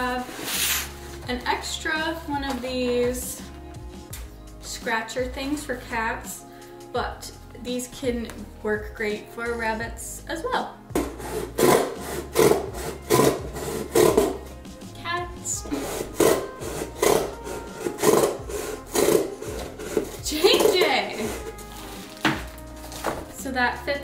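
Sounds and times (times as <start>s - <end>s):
scissors cutting cardboard: 11.0s - 14.4s, 15.7s - 23.2s.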